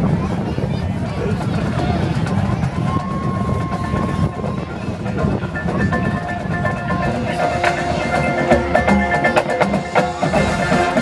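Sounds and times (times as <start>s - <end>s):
crowd chatter: 0.0s - 11.0s
marching band soft sustained notes: 0.0s - 11.0s.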